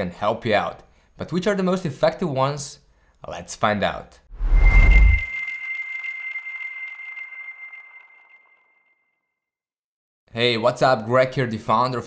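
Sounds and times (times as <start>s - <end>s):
high ringing tone: 4.4s - 9.0s.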